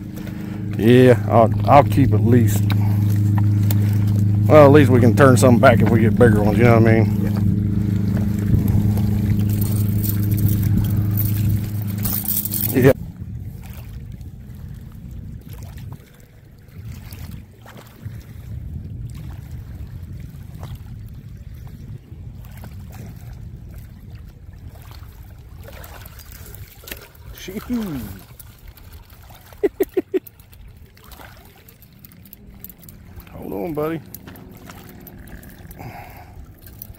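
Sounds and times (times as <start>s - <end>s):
motor hum with tones: 0.0s - 13.0s, 31.0s - 36.9s
water noise: 0.0s - 36.9s
wind: 0.0s - 36.9s.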